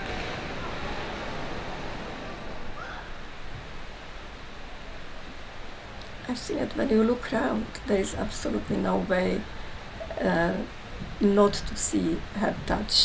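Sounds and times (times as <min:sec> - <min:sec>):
swimmers splashing: 0:00.0 - 0:03.7.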